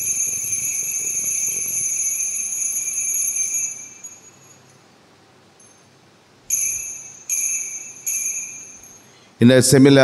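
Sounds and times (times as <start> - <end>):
altar bell ringing: 0.0 - 9.4.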